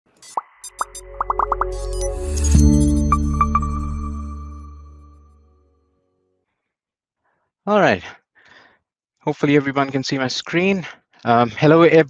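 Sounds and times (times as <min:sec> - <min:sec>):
bright electronic sparkles: 0:00.2 - 0:05.6
low electronic tone: 0:00.2 - 0:05.9
electronic pops dropping in pitch: 0:00.3 - 0:04.1.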